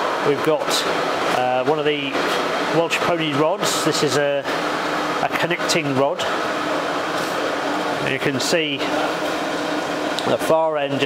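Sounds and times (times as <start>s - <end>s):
workshop machinery whirr and hum: 0.0s - 11.0s.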